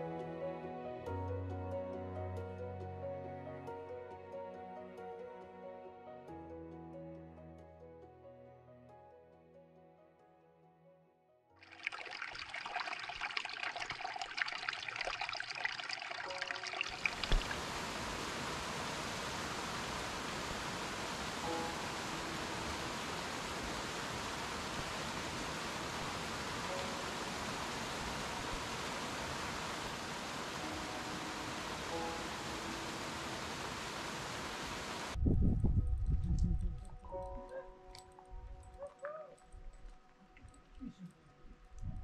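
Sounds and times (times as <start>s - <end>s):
creek trickling over rocks: 11.6s - 35.2s
water rushing down a cascade: 11.6s - 35.2s.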